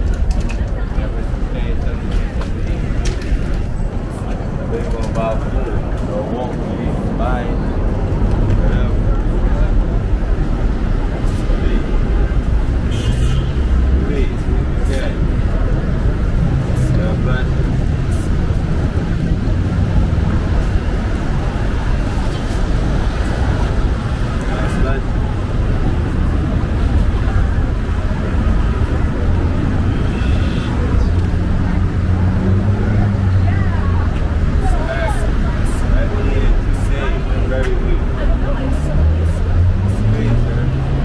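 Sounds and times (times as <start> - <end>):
indistinct voices: 0.0 - 41.0
low traffic rumble: 0.0 - 41.0
vehicles passing: 0.0 - 41.0.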